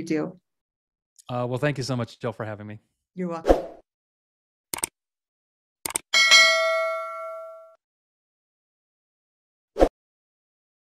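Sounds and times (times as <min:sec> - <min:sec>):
quick clicks: 0:04.7 - 0:05.0, 0:05.8 - 0:06.1
bell chime: 0:06.2 - 0:07.8.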